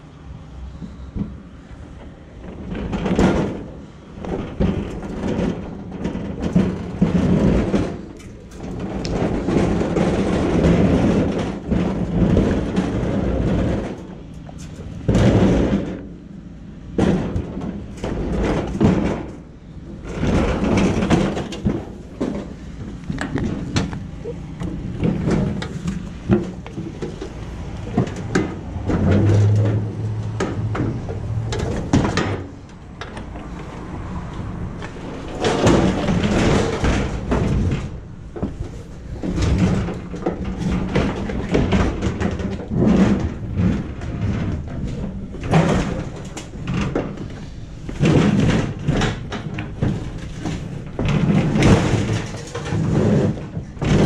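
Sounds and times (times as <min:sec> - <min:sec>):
metal grill lid clanking and rattling: 0:02.5 - 0:16.2, 0:17.0 - 0:33.5, 0:35.0 - 0:54.0.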